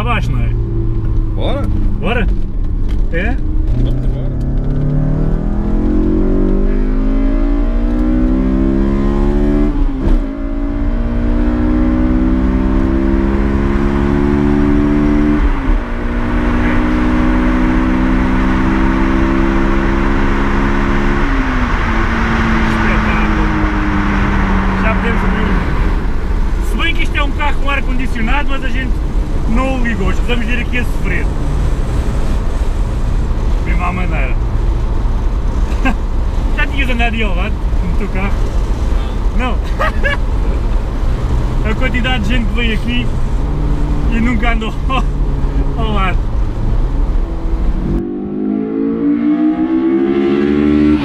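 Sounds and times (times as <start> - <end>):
car engine accelerating: 0.0 - 51.0
voices: 22.6 - 23.7, 24.7 - 25.8, 41.6 - 43.2.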